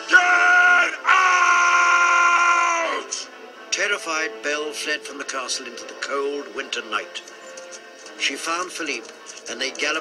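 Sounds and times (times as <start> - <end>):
man shouting: 0.0 - 3.2.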